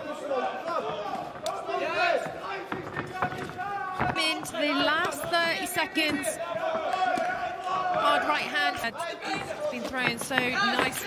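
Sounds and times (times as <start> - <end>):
voices shouting: 0.0 - 11.0.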